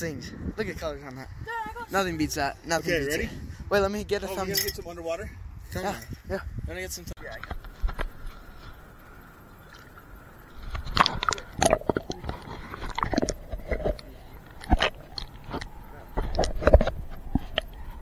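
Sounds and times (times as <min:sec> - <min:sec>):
water gurgling: 0:08.1 - 0:18.0.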